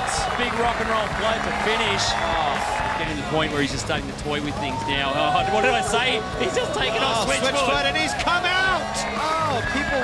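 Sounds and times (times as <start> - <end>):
background music with low notes: 0.0 - 10.0
people whooping and exclaiming: 4.5 - 10.0.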